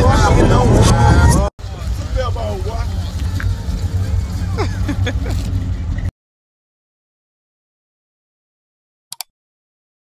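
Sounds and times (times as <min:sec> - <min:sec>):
faint voices: 0:00.0 - 0:05.9
truck engine rumbling: 0:00.0 - 0:06.1.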